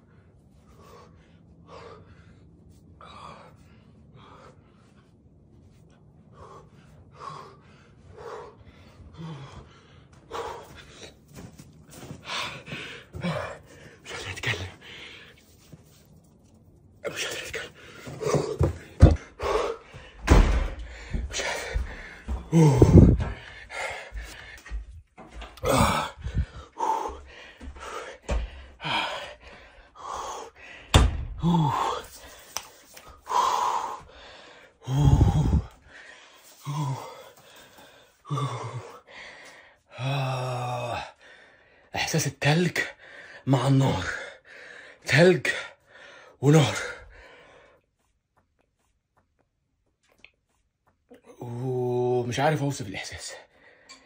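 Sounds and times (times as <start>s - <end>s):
man gasping and breathing hard: 6.3s - 15.4s, 17.3s - 42.0s, 42.8s - 48.1s
low thumps: 18.2s - 23.5s.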